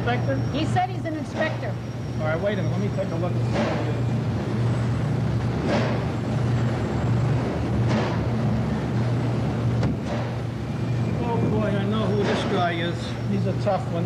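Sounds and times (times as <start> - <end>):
machinery hum: 0.0 - 14.0.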